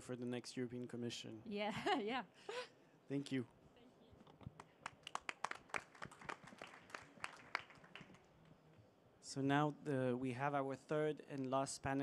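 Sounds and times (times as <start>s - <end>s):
light applause: 4.5s - 8.3s.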